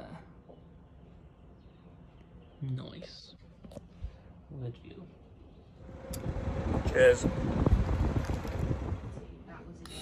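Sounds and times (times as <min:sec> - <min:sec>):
wind buffeting microphone: 0:05.8 - 0:09.4.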